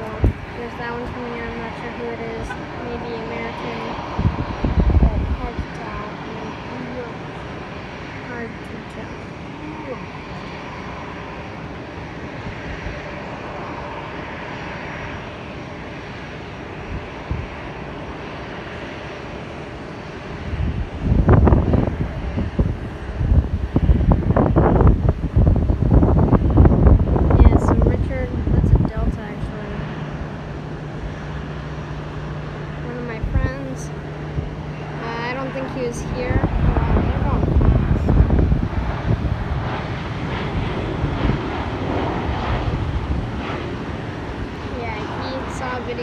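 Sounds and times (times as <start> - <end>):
rough low rumble: 0.0 - 19.2, 20.1 - 46.0
distant jet engine hum: 0.0 - 46.0.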